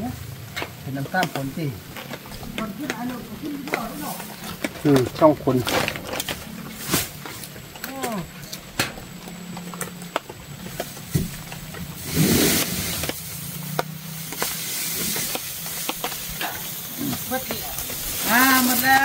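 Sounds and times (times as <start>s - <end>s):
sharp clicks and crackles: 0.3s - 19.0s
rustling burst: 11.8s - 19.0s.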